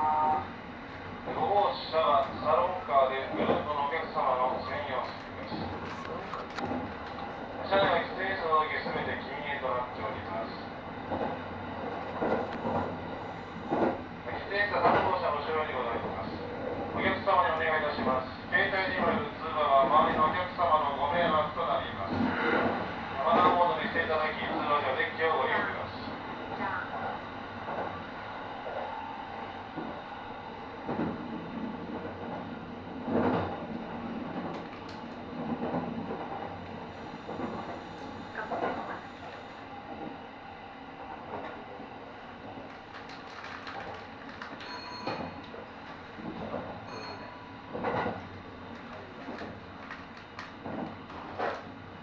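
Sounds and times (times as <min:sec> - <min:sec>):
train wheels on rails: 0:00.8 - 0:40.3, 0:41.0 - 0:52.0.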